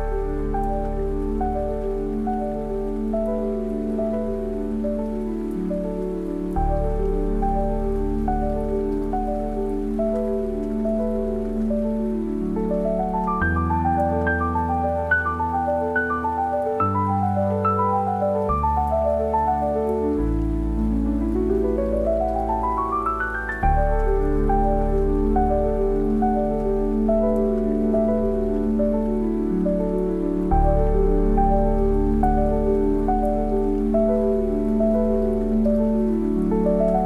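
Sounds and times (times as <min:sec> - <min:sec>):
gentle solo piano: 0:00.0 - 0:37.0
soft rain: 0:00.0 - 0:37.0.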